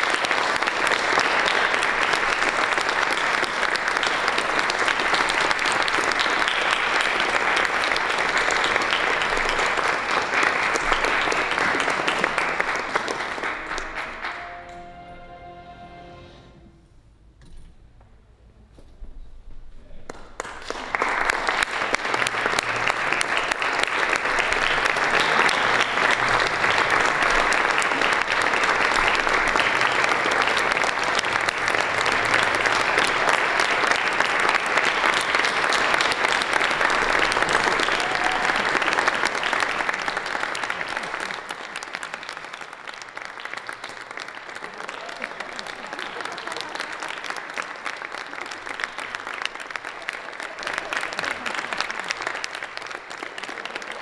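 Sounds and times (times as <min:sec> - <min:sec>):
audience applauding: 0:00.0 - 0:16.6, 0:20.1 - 0:54.0.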